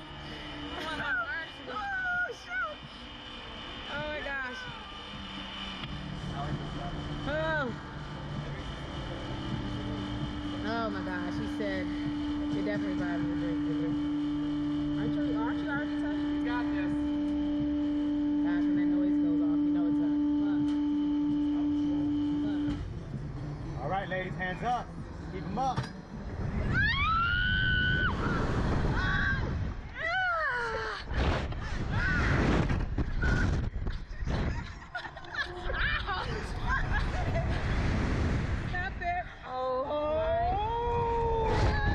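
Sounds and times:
low hum: 0.0s - 41.9s
wind buffeting microphone: 27.6s - 30.0s
people shrieking and laughing: 34.1s - 37.8s.

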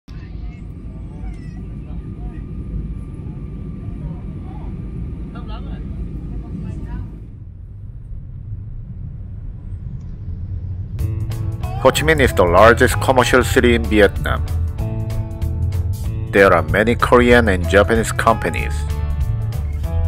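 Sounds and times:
airliner cabin engine rumble: 0.0s - 20.0s
faint voices: 0.1s - 7.3s.

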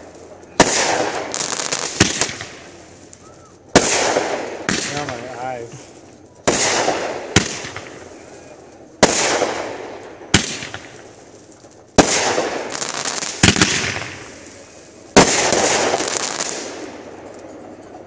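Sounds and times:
firework bangs: 0.0s - 18.0s
firework crackling: 0.0s - 18.0s.

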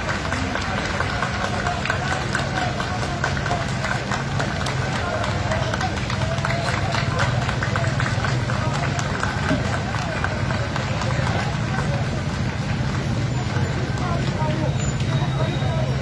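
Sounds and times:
outdoor street noise: 0.0s - 16.0s
voices: 0.0s - 16.0s.

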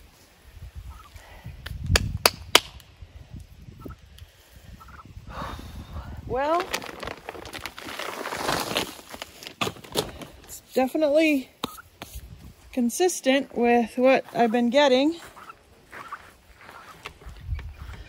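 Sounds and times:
hands digging through soil: 6.2s - 12.8s
footsteps on dirt: 6.6s - 18.0s.

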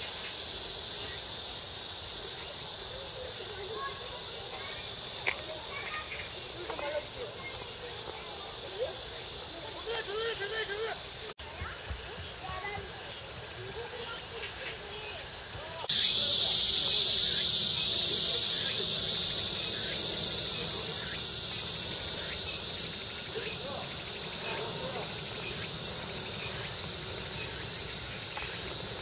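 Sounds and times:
cicadas buzzing: 0.0s - 29.0s
faint voices: 1.8s - 29.0s.

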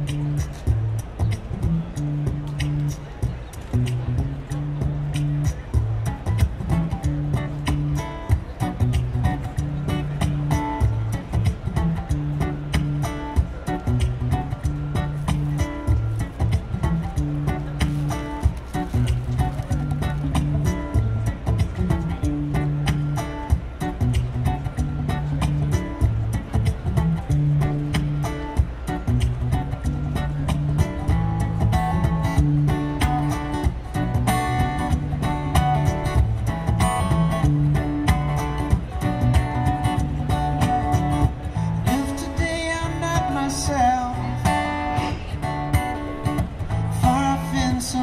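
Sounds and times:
acoustic guitar strumming: 0.0s - 48.0s.

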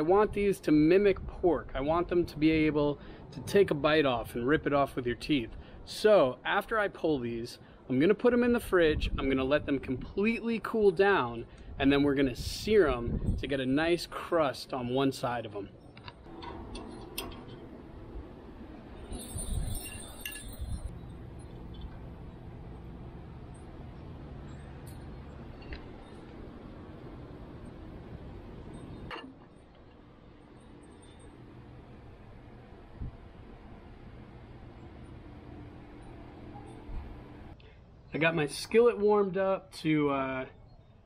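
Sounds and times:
steady low hum: 0.0s - 39.1s
metal tongs clinking on grates: 19.1s - 20.9s.

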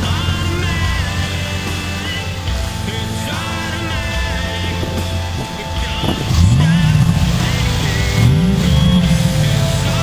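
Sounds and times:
rock music: 0.0s - 10.0s
truck engine revving: 0.0s - 10.0s.

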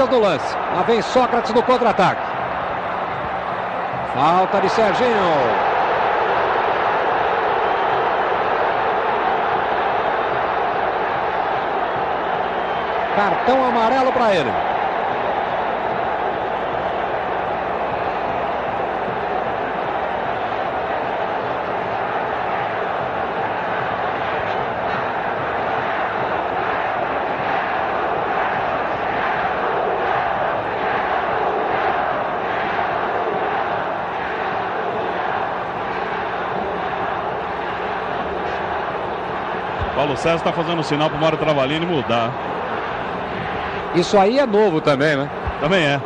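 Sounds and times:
stadium crowd din: 0.0s - 46.0s.

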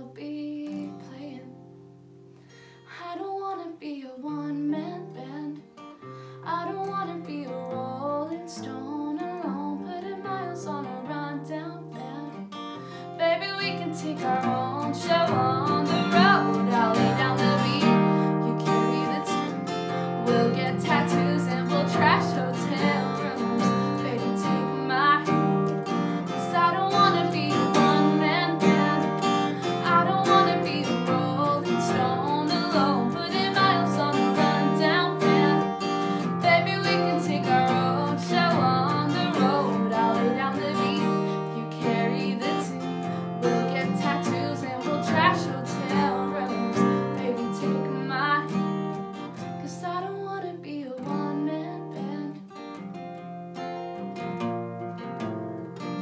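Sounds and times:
woman singing: 0.0s - 1.8s, 2.8s - 52.7s
acoustic guitar strumming: 11.9s - 50.4s, 51.1s - 56.0s.

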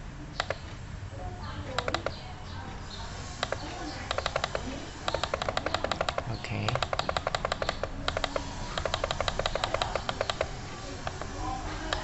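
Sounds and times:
computer mouse clicking: 0.4s - 0.8s, 1.7s - 2.2s, 3.4s - 12.0s.

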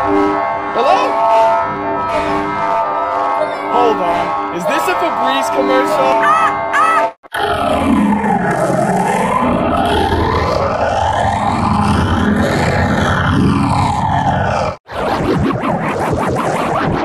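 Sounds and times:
distorted pitched-down startup jingle: 0.0s - 17.0s.

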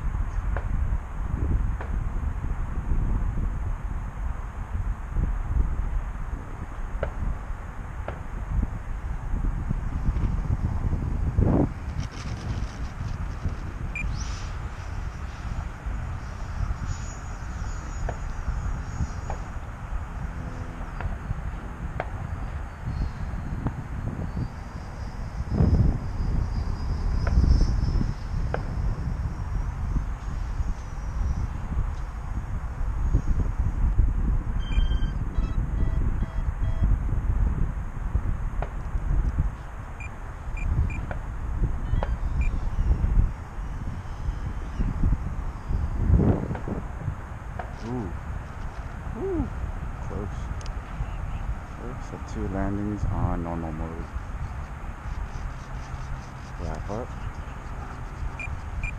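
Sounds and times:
thin whine: 0.0s - 58.9s
wind buffeting microphone: 0.0s - 58.9s
small beeps: 13.9s - 14.2s, 34.6s - 36.9s, 40.0s - 41.1s, 41.8s - 42.8s, 58.4s - 58.9s.

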